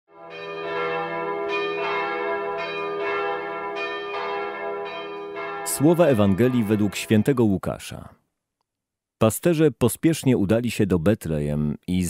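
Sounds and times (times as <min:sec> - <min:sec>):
bells chiming: 0:00.2 - 0:07.4.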